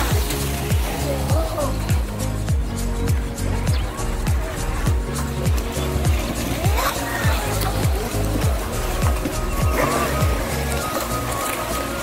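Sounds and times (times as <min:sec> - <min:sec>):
background music with bass beat: 0:00.0 - 0:12.0
model boat motor whining: 0:05.8 - 0:12.0.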